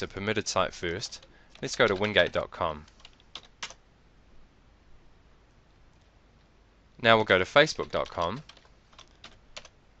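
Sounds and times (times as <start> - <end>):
computer keyboard keystrokes: 1.0 - 3.8, 7.8 - 9.8.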